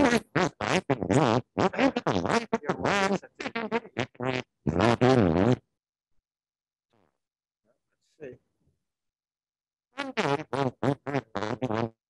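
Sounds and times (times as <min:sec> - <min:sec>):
person speaking in clipped syllables: 0:01.6 - 0:03.6.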